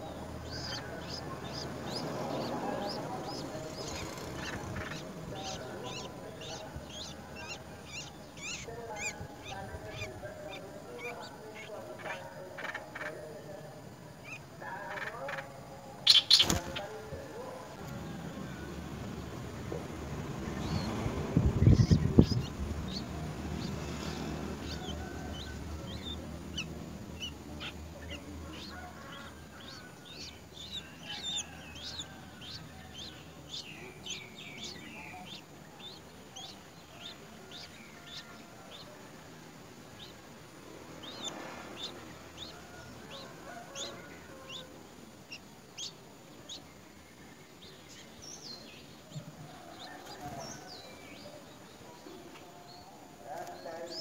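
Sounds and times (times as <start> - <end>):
nestling birds begging calls: 0.0 - 54.0.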